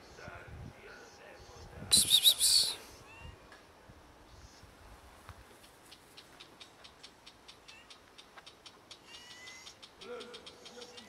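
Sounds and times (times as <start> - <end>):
bird harsh chattering call: 1.9 - 2.8
faint whistled note: 1.9 - 2.8.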